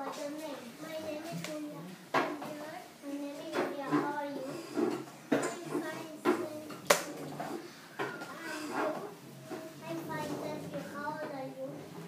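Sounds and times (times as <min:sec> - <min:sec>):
child speaking: 0:00.0 - 0:12.0.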